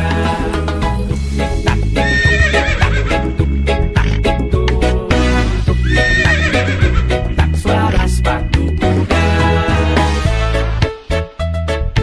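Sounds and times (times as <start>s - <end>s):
upbeat music with steady beat: 0.0s - 12.0s
horse whinnying: 2.0s - 3.3s, 5.8s - 7.0s.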